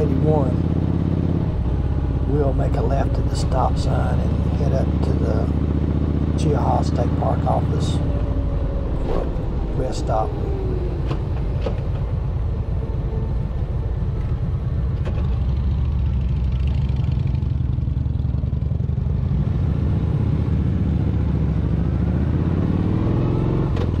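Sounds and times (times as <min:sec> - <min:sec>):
motorcycle engine rumbling: 0:00.0 - 0:24.0.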